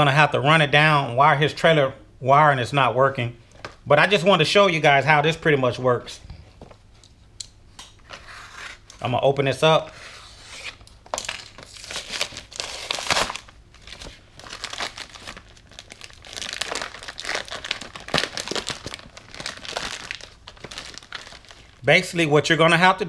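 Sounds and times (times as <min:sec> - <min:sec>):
cardboard package tearing: 0:10.1 - 0:21.8
plastic bag crinkling: 0:11.1 - 0:21.8.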